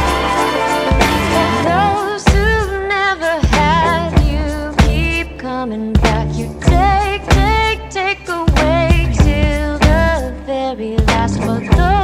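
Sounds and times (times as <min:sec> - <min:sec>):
pop soul song: 0:00.0 - 0:12.0
person singing: 0:01.4 - 0:12.0.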